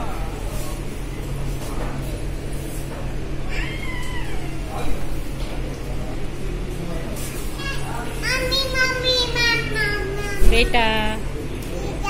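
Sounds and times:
steady low hum: 0.0 - 12.0
toddler squealing: 3.5 - 4.7.

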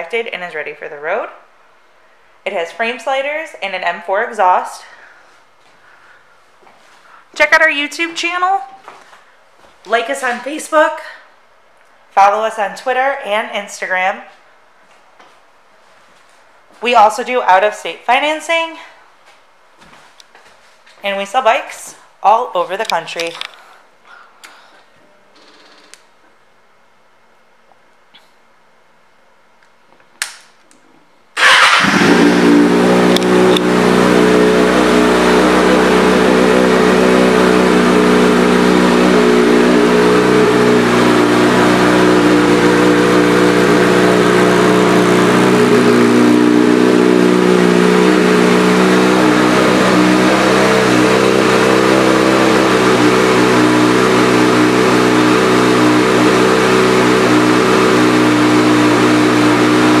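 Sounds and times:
motorcycle engine starting and idling: 31.4 - 60.0.

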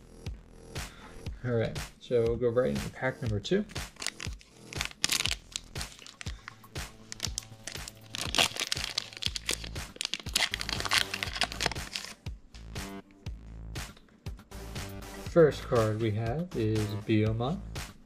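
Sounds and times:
background music: 0.0 - 18.0
foil pack crinkling and tearing: 3.8 - 12.2.

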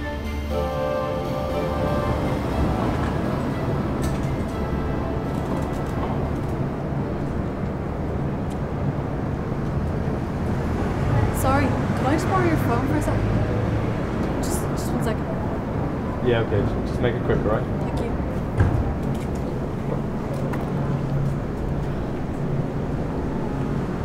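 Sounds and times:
music: 0.0 - 7.0
traffic hum: 0.0 - 24.0.

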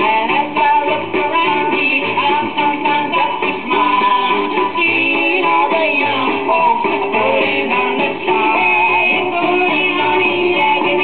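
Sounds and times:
song on old record: 0.0 - 11.0.

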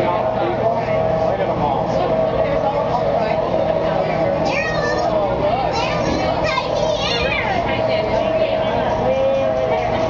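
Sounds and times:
children and people chattering: 0.0 - 10.0.

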